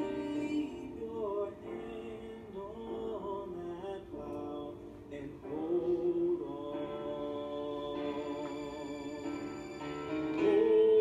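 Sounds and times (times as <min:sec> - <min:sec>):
men singing through speakers: 0:10.4 - 0:11.0.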